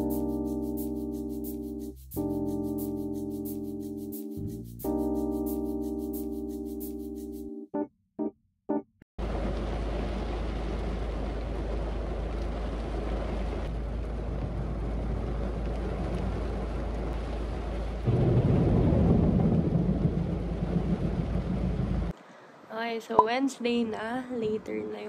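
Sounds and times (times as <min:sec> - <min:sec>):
heavy rain on car roof: 0:09.2 - 0:22.1.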